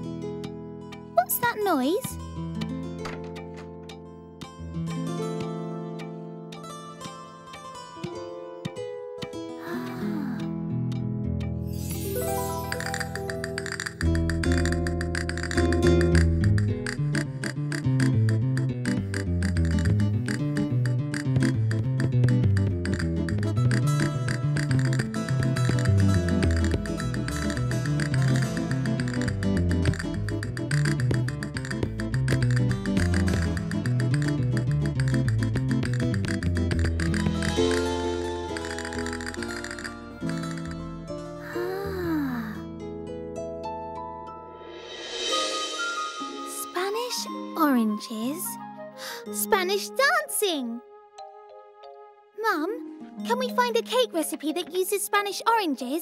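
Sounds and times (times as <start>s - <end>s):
spanish-style guitar music: 10.5s - 41.5s.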